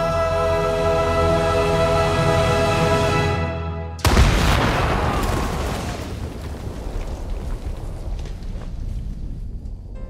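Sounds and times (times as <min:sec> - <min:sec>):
deep explosion rumble: 0:04.0 - 0:10.0
falling debris crackles and impacts: 0:04.0 - 0:10.0.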